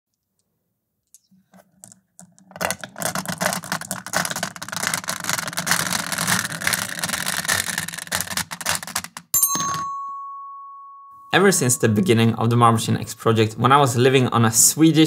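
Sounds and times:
marbles clattering down wooden ramp: 1.8 - 9.3.

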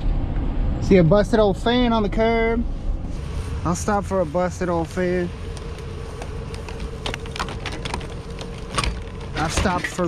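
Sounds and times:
pickup truck idling: 3.2 - 10.0
fan clattering on scrap metal: 6.6 - 10.0.

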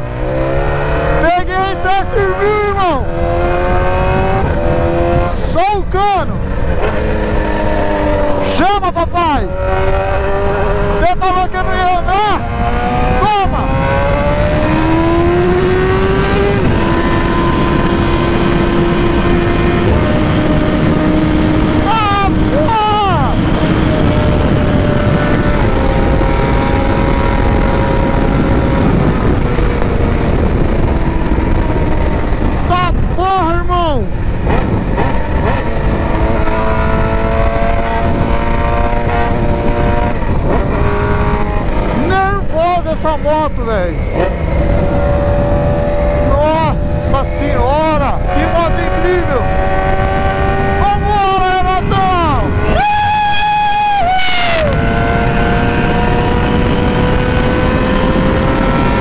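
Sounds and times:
motorcycle engine revving: 0.0 - 59.0
wind on microphone: 0.0 - 59.0.

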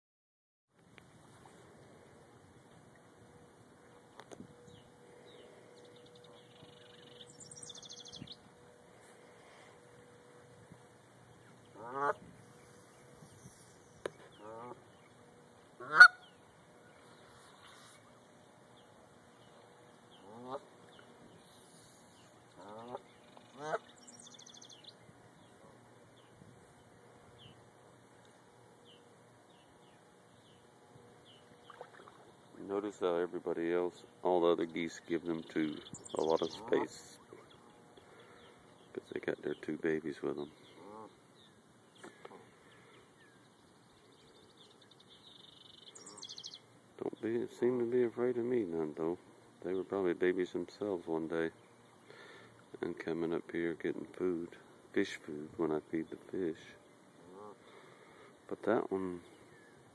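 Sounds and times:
geese honking: 11.4 - 13.0, 14.1 - 18.0, 20.0 - 24.8, 34.5 - 38.6, 40.1 - 41.2, 57.1 - 58.2.

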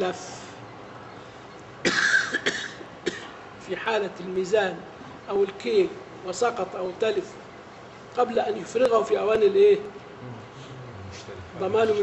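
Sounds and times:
man coughing: 1.8 - 3.4.

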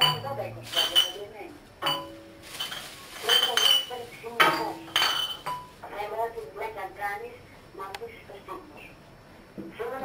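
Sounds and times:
hard objects clinking: 0.0 - 5.9.

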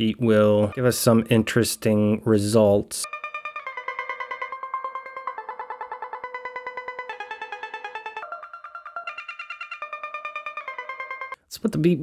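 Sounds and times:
stylophone buzzy notes with tremolo: 3.0 - 11.4.

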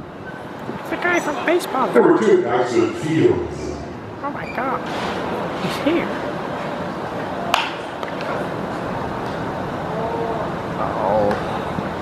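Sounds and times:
baseball bat cracking ball: 7.5 - 8.2.

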